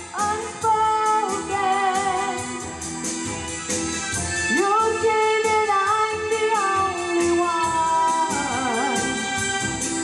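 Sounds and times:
woman singing: 0.0s - 2.7s, 4.5s - 9.5s
instrumental backing: 0.0s - 10.0s.

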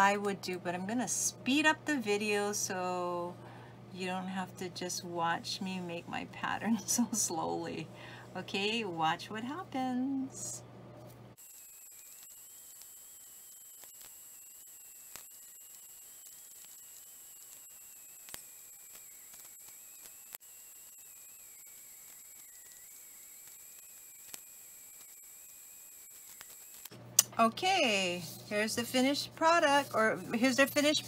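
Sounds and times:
thin wavering high whine: 11.4s - 31.0s.

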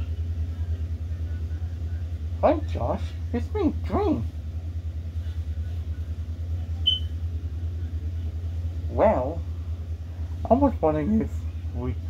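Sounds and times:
steady low hum: 0.0s - 12.0s
brief high chirp: 6.9s - 7.1s.

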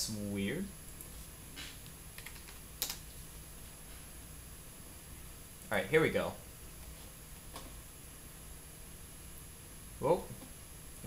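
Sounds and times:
computer keyboard keystrokes: 2.2s - 3.0s.

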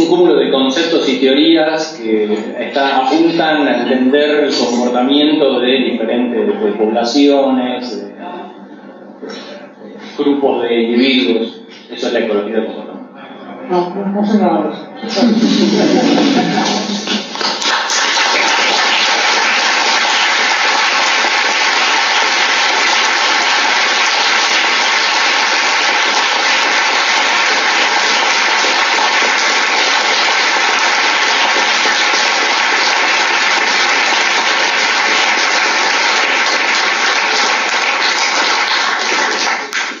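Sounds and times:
audience applauding: 15.9s - 40.0s.

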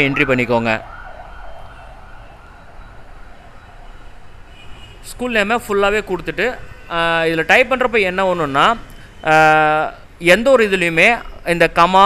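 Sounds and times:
siren wailing: 0.0s - 4.3s.

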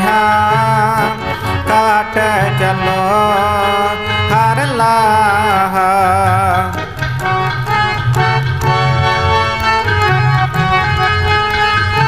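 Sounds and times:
harmonium chords: 0.0s - 12.0s.

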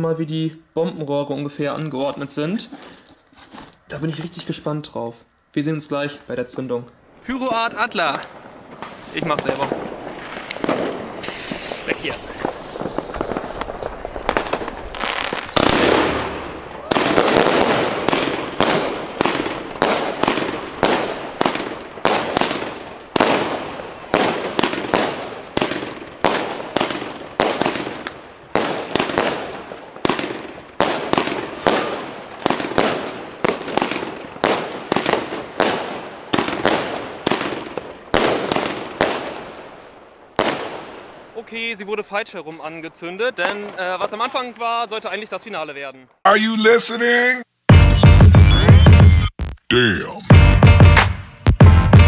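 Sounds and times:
faint fireworks crackle: 0.0s - 45.4s
fireworks launching and bursting: 7.4s - 39.6s, 46.3s - 49.7s.

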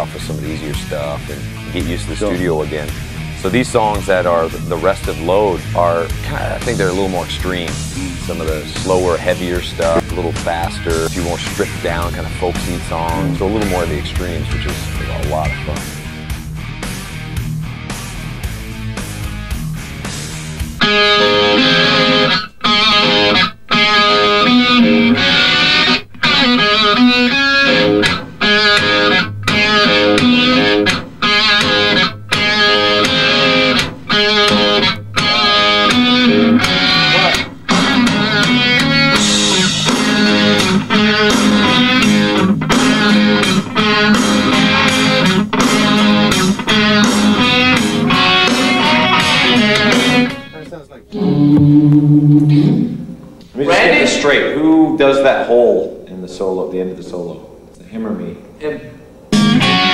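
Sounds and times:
electric guitar riff with band: 0.0s - 54.2s, 59.3s - 59.9s.

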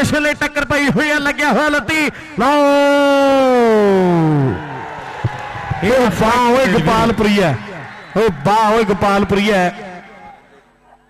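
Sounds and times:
man calling over public address: 0.0s - 4.3s, 5.8s - 10.4s.

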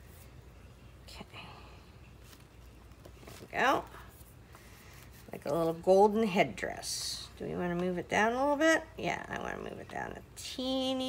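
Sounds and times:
paper rustling: 2.2s - 5.8s.

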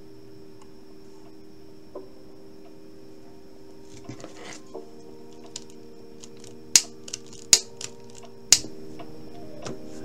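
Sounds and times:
faint steady hum: 0.0s - 10.0s
scissors snipping plastic: 5.3s - 8.7s.

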